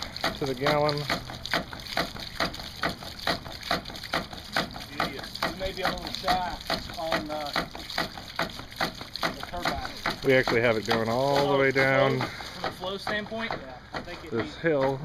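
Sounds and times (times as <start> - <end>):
water splashing out: 0.0 - 13.5
pump valve clacking shut: 0.0 - 15.0.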